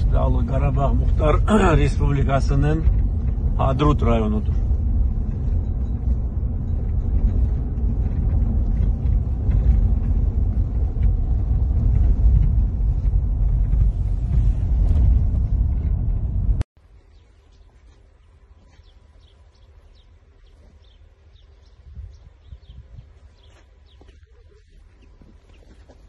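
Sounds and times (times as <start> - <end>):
car interior engine and road rumble: 0.0 - 17.1.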